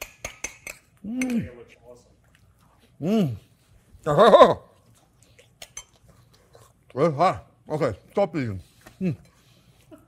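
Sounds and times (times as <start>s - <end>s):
man chewing food: 2.2s - 4.0s, 4.6s - 7.0s.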